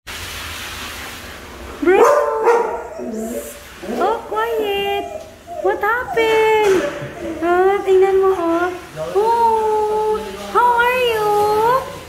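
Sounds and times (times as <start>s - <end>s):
dog crying excitedly: 1.8s - 8.5s.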